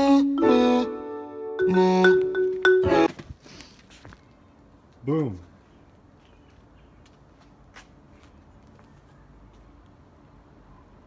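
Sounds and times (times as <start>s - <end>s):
faint background noise: 1.7s - 11.0s.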